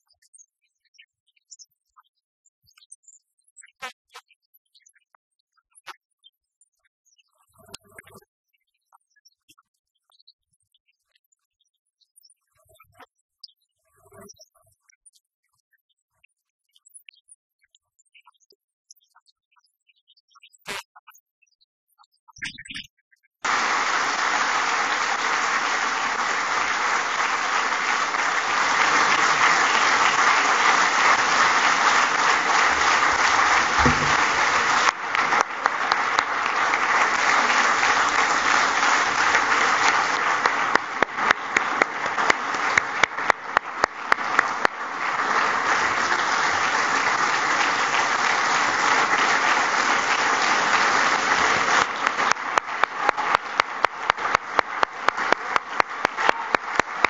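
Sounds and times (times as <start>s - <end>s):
audience applauding: 23.4s - 57.0s.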